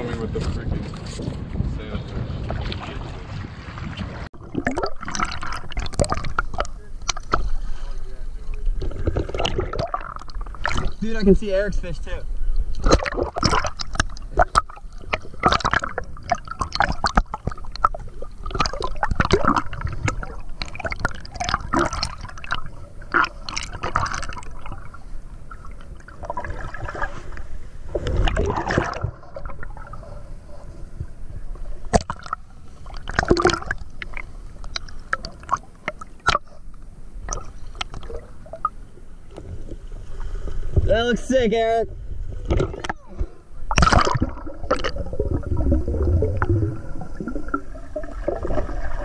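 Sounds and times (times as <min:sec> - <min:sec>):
seawater sloshing and splashing: 0:02.2 - 0:11.4, 0:12.7 - 0:41.0, 0:42.4 - 0:49.0.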